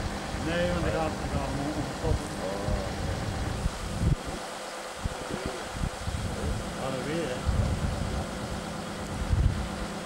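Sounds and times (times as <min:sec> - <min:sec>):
low uneven rumble: 0:00.0 - 0:10.0
wind gusting on microphone: 0:00.0 - 0:10.0
voices calling outdoors: 0:00.3 - 0:09.1.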